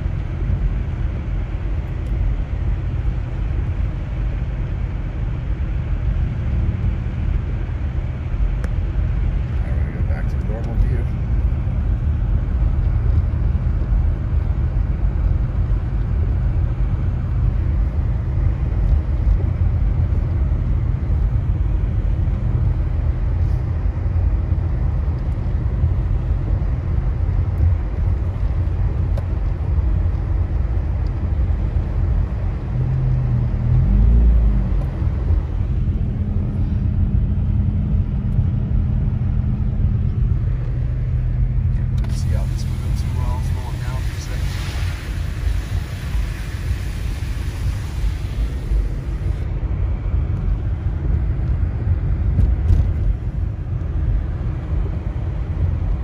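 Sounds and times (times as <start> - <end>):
car driving on snowy road: 0.0 - 56.0
low steady hum: 0.0 - 56.0.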